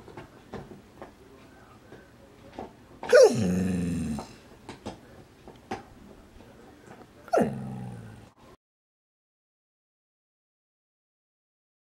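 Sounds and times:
dog howl into growl: 3.1s - 4.3s, 7.3s - 8.3s.

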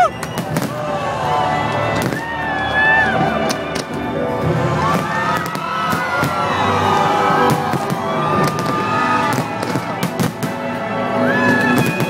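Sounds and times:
fireworks bursting: 0.0s - 0.9s, 1.9s - 2.4s, 4.8s - 10.8s, 11.4s - 12.0s
music playing: 0.0s - 12.0s.

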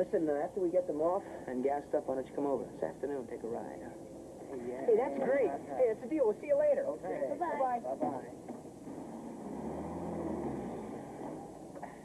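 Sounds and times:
car engine low hum: 8.3s - 12.0s.

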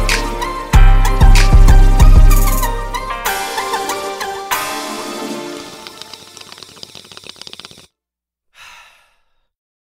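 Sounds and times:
rapid clicking ticks: 5.5s - 7.9s
long breathy exhale: 8.6s - 9.5s.

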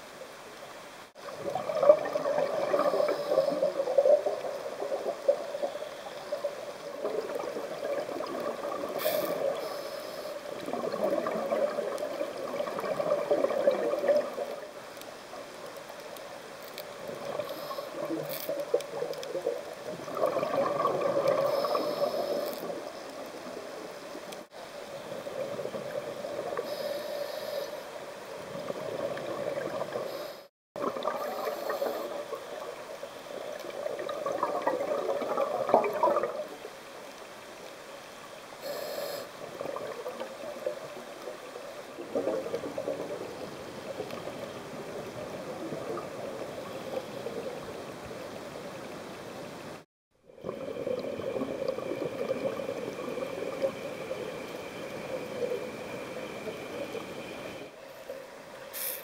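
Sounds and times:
underwater regulator bubbles gurgling: 1.2s - 14.8s, 17.0s - 27.1s, 28.4s - 37.2s, 38.7s - 49.0s, 50.3s - 58.3s.

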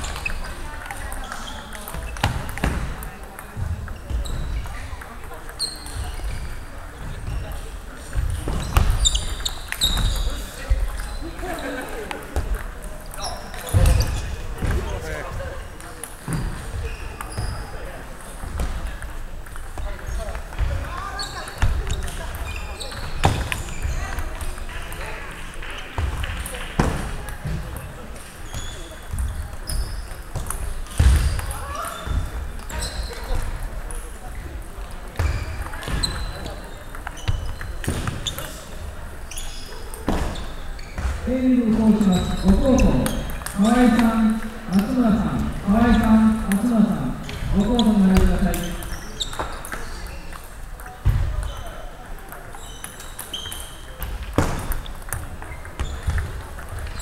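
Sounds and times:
table tennis balls clicking: 18.1s - 28.4s, 35.5s - 39.2s, 41.9s - 57.0s
person talking: 41.2s - 48.8s.

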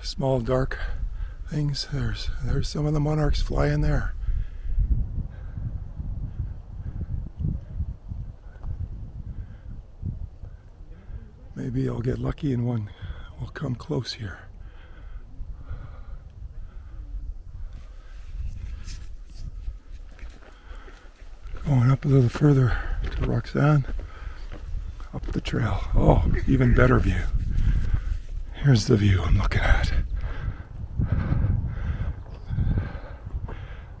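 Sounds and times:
wind rumble on microphone: 0.0s - 13.6s, 14.2s - 34.0s
person breathing hard: 4.2s - 7.2s, 12.9s - 13.3s, 14.6s - 19.4s, 20.4s - 21.4s, 23.9s - 25.1s, 29.9s - 34.0s
faint distant voices: 10.5s - 11.6s.

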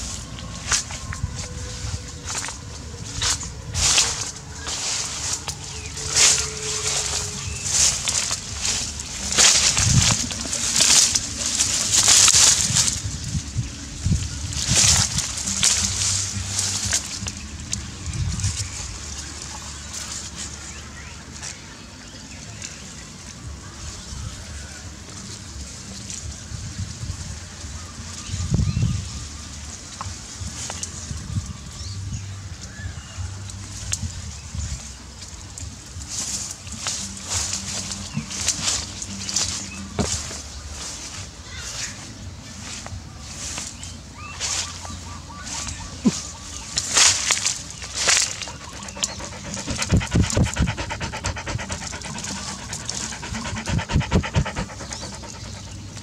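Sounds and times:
grass rustling against microphone: 0.0s - 20.8s, 33.8s - 56.0s
low wind: 0.0s - 56.0s
dog panting: 48.0s - 56.0s
dull low thumps: 48.4s - 56.0s.

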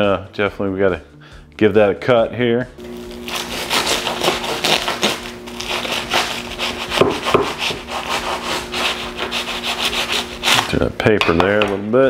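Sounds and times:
knife sawing through foil and bread: 2.9s - 10.9s.

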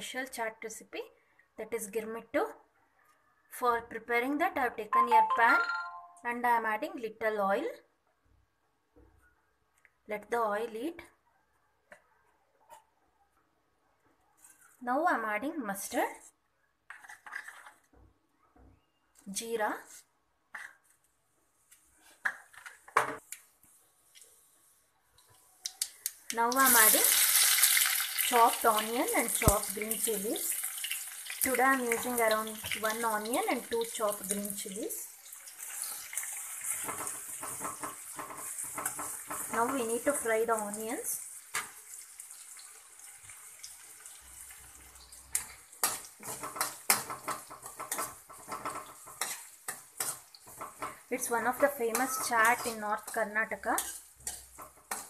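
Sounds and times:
metal spatula scraping a pan: 16.9s - 17.9s, 35.7s - 40.5s, 44.6s - 55.0s
seeds sizzling in hot oil: 24.1s - 55.0s.

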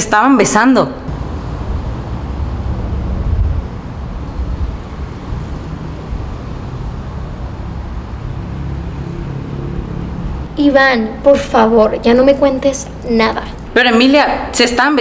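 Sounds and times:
low rumble of road traffic: 0.0s - 15.0s.

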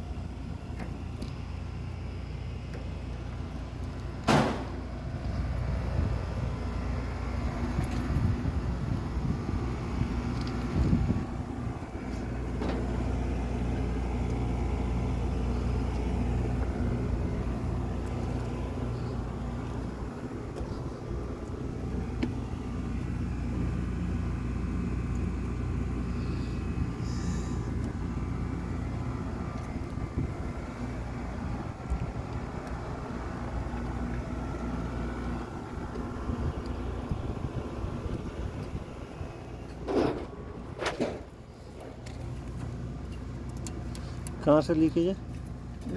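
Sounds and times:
air conditioning units humming: 0.0s - 45.9s.

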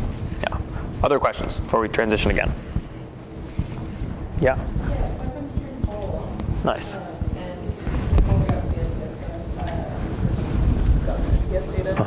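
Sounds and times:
clothing brushing microphone: 7.0s - 11.9s.

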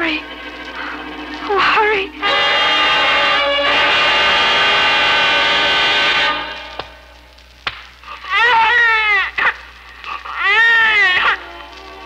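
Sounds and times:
newborn baby crying: 8.1s - 11.6s.

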